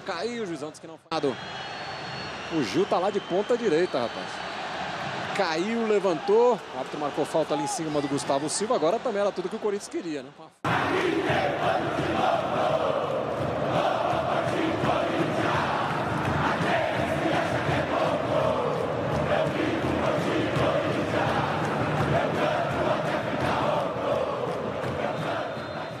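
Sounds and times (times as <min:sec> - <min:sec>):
stadium crowd chanting: 0:10.6 - 0:26.0.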